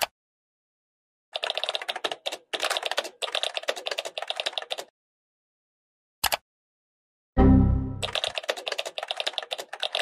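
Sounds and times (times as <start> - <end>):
rapid typing on keyboard: 1.3 - 4.9, 8.0 - 10.0.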